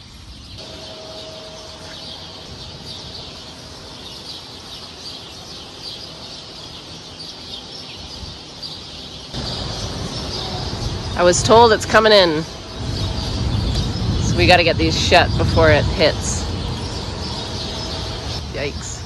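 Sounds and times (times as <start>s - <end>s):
low rumbling noise: 0.0s - 19.0s
small birds chirping: 0.0s - 19.0s
steady background hiss: 0.0s - 19.0s.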